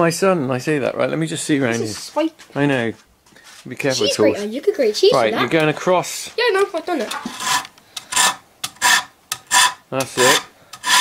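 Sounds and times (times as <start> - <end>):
spokeshave scraping wood: 7.0 - 11.0.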